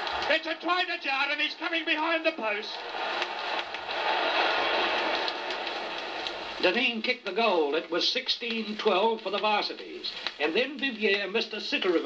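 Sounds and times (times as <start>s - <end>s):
crowd cheering and roaring: 0.0s - 6.8s
record surface clicks: 5.0s - 11.2s.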